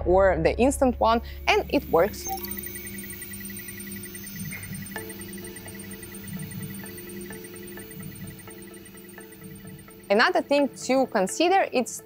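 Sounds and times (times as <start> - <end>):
printer mechanical hum and whine: 1.6 - 10.1.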